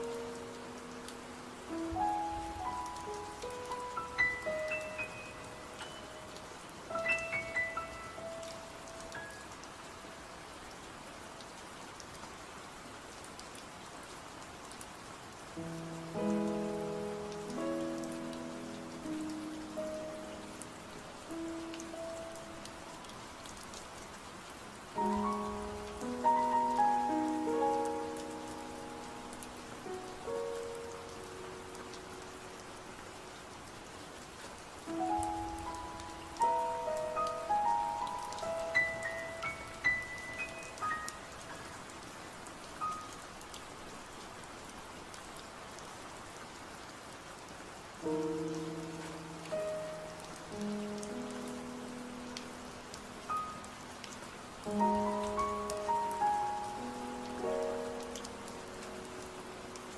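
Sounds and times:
soft sleep music: 0.0 - 10.4, 15.6 - 42.1, 48.0 - 59.9
rain hiss: 0.0 - 59.9.

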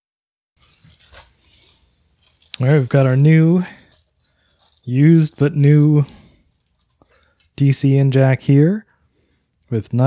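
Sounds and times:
plastic bag crinkle: 0.6 - 8.0
plastic bag handling: 0.6 - 8.0.

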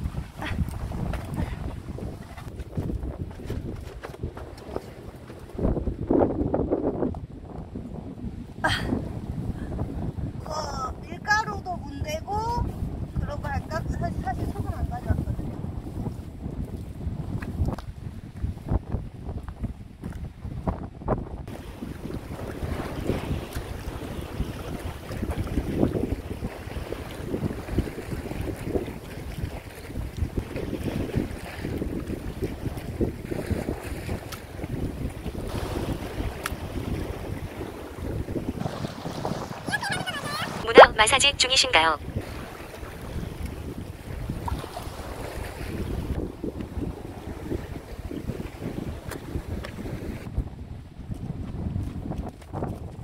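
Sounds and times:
wind rumbling on microphone: 0.0 - 53.0
sea water washing over rocks: 21.5 - 40.8.

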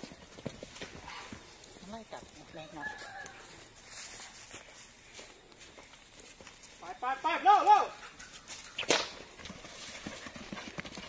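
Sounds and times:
horse trotting on grassy earth: 0.0 - 11.0.

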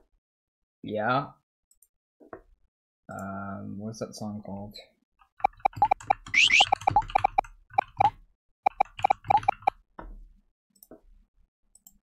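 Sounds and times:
quick rising squeaks: 6.3 - 6.8
keyboard keystrokes: 8.7 - 9.7.

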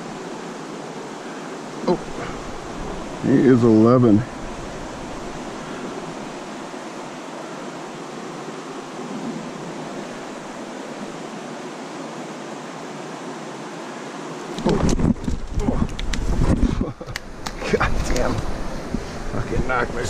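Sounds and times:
stream water flowing: 0.0 - 20.0
camera handling rumble: 14.6 - 18.5.

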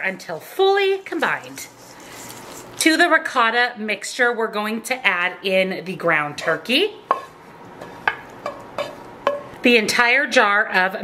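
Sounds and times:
wooden spoon scraping a skillet: 0.0 - 2.9, 6.3 - 9.5.

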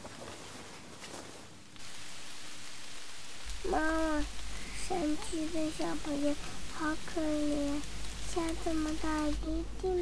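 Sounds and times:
background ambience hiss: 0.0 - 10.0.

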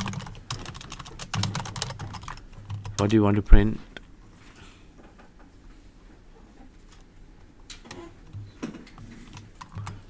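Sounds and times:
typing on computer keyboard: 0.0 - 3.2, 9.3 - 10.0.

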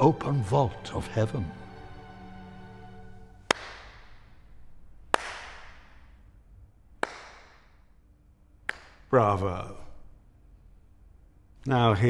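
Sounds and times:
held music chord: 0.0 - 3.5
slow handclaps echoing: 3.3 - 6.3, 6.9 - 8.0, 8.6 - 9.1.

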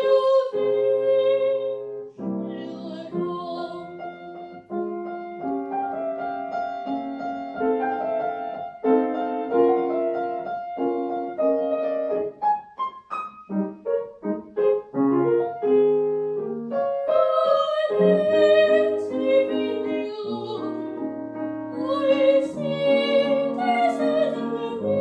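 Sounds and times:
solo piano playing: 0.0 - 25.0.

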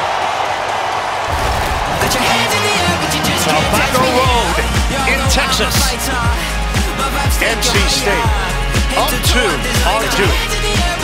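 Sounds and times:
arena crowd noise: 0.0 - 11.0
broadcast music with low bass: 1.9 - 11.0.

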